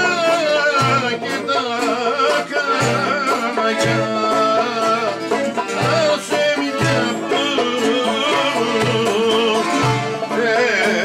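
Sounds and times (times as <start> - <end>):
low drum beat: 0.0 - 10.4
plucked lute: 0.0 - 11.0.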